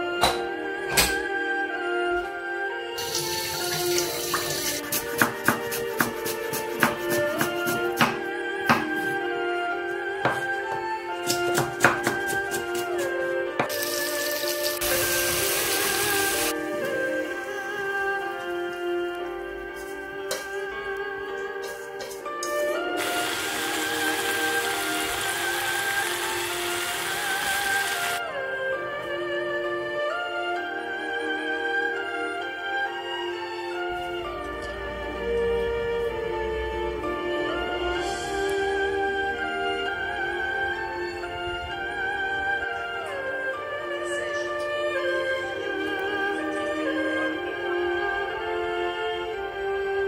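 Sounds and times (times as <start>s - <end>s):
soft guitar-like music: 0.0s - 50.0s
dishes being rinsed: 3.0s - 6.2s
meat sizzling in frying pan: 13.7s - 16.5s.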